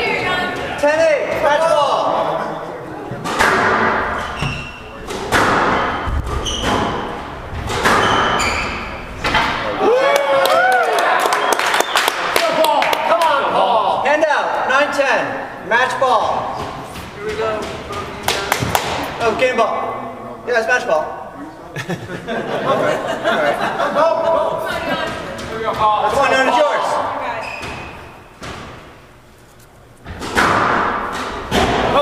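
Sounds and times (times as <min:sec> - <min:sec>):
spectator voices in echoing hall: 0:00.0 - 0:06.2, 0:09.0 - 0:27.4.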